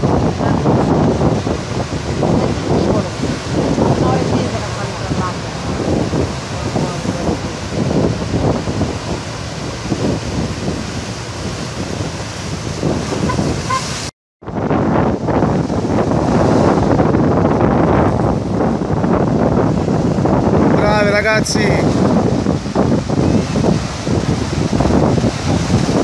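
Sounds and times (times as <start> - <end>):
rough sea surf: 0.0 - 26.0
wind buffeting microphone: 0.0 - 26.0.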